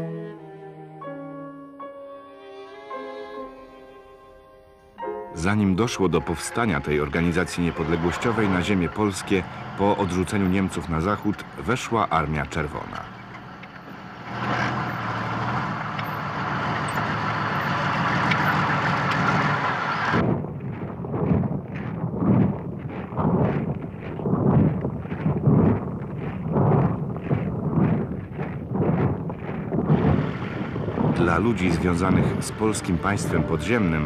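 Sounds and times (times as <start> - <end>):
tank engine and tracks: 5.4 - 34.0
boots marching in step: 20.2 - 32.4.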